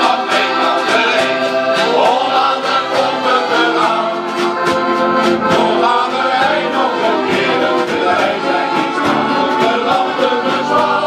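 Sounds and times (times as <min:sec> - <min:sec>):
accordions: 0:00.0 - 0:11.0
choir singing: 0:00.0 - 0:11.0.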